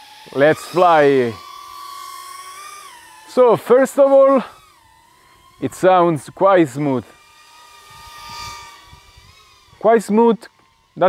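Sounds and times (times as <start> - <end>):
drone motors whining: 0.0 - 11.0.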